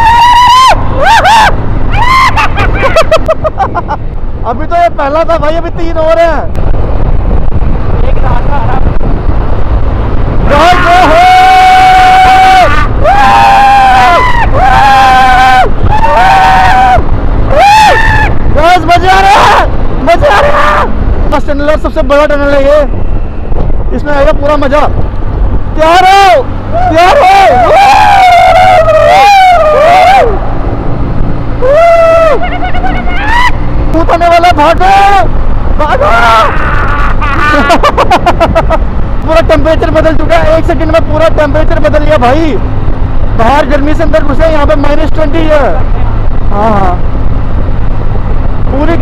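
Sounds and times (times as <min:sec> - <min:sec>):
person shouting loudly: 0:00.0 - 0:03.0, 0:10.5 - 0:21.0, 0:25.8 - 0:30.4, 0:31.6 - 0:33.6, 0:34.6 - 0:37.8
person whooping yell: 0:00.0 - 0:03.2, 0:10.5 - 0:18.4, 0:19.0 - 0:21.0, 0:26.0 - 0:30.4, 0:31.6 - 0:33.6, 0:34.9 - 0:37.8
wind rushing over microphone: 0:00.0 - 0:49.0
motorcycle engine running: 0:20.8 - 0:49.0.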